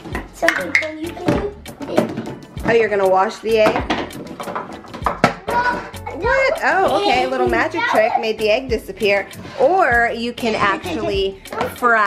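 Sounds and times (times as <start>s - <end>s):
wooden toy pieces knocking: 3.5s - 5.8s.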